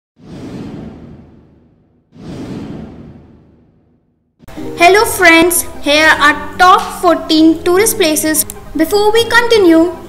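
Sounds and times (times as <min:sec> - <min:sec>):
whoosh sound effects: 0:00.2 - 0:04.1.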